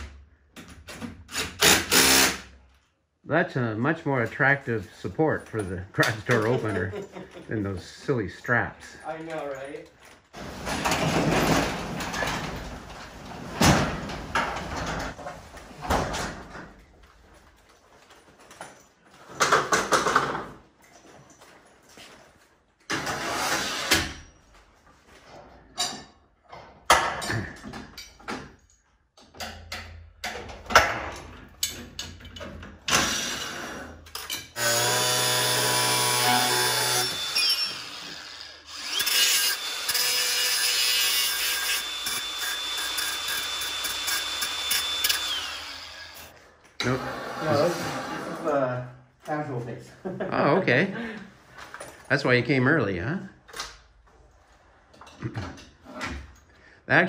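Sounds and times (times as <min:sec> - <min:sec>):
knocks and clatter of work: 0:05.2 - 0:07.6, 0:09.1 - 0:38.3, 0:53.5 - 0:56.5
electric motor whining: 0:41.9 - 0:46.3.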